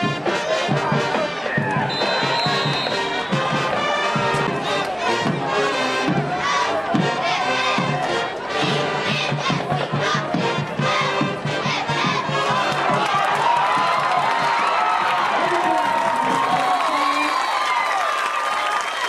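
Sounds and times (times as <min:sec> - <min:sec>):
music: 0:00.0 - 0:17.2
crowd shouting and cheering: 0:00.0 - 0:19.0.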